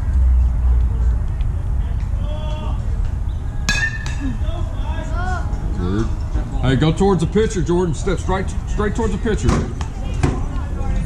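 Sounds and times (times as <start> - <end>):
crowd voices: 0.0 - 11.0
metal bat hitting ball: 3.7 - 4.2.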